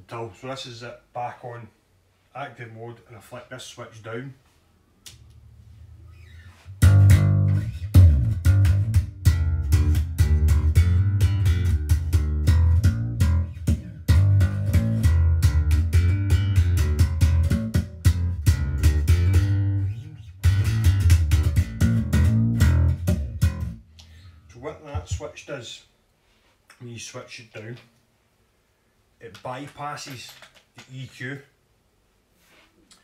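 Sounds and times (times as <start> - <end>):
electric bass plucked notes: 6.0 - 25.2.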